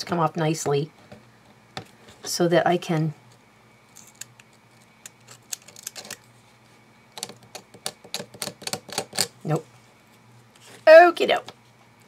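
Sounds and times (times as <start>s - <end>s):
paper peeling clicks and crackles: 5.1s - 6.3s.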